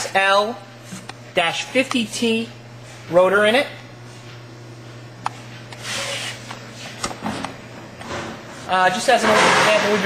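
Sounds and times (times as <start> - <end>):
centrifuge humming: 0.6 - 10.0.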